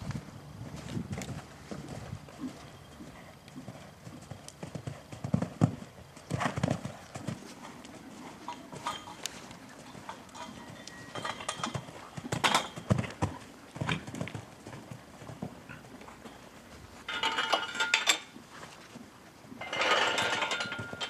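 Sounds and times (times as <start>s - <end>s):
horse hoofbeats on soft ground: 0.0s - 17.1s.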